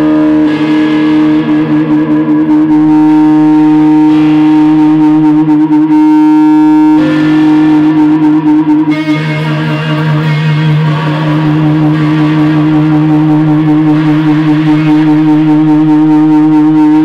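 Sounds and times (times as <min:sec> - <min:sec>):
electric guitar feedback drone: 0:00.0 - 0:17.0.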